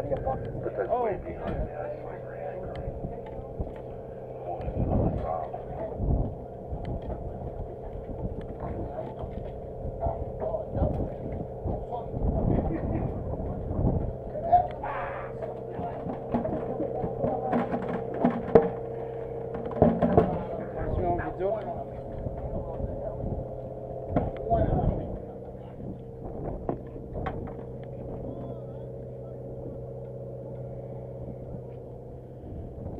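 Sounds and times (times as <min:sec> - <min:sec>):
boat engine droning: 0:00.0 - 0:32.9
low thumps: 0:00.0 - 0:32.9
buckets and gear clicking and knocking: 0:15.4 - 0:21.1.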